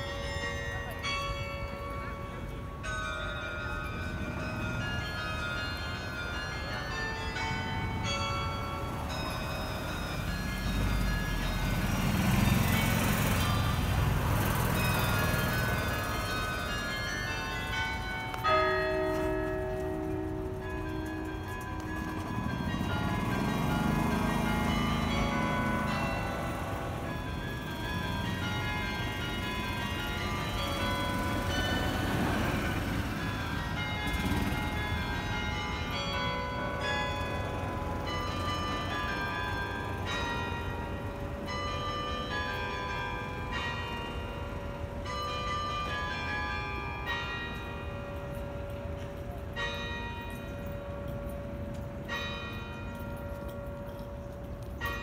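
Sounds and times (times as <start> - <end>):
carillon bells playing melody: 0.0 - 55.0.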